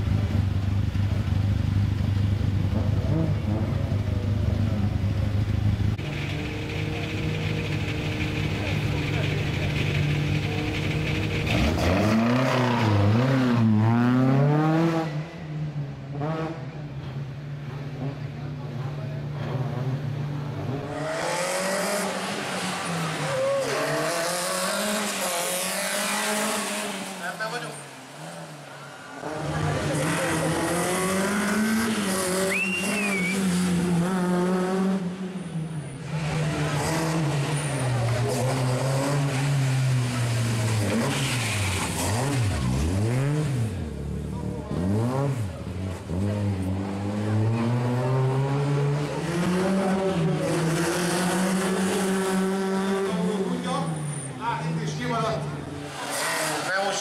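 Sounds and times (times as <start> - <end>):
rally car engine revving: 0.0 - 57.0.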